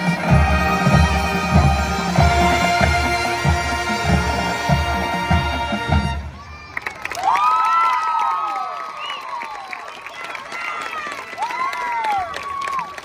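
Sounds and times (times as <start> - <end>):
marching band chord: 0.0 - 6.4
crowd cheering and whooping: 6.4 - 13.0.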